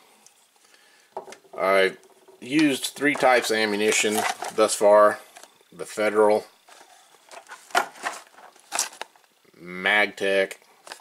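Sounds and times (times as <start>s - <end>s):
cardboard boxes rustling: 3.1s - 4.8s, 6.6s - 9.2s.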